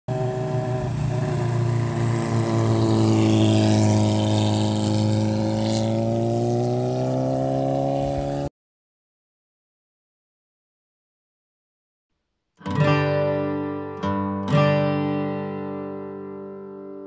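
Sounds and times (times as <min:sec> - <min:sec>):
motorcycle engine running: 0:00.1 - 0:08.5.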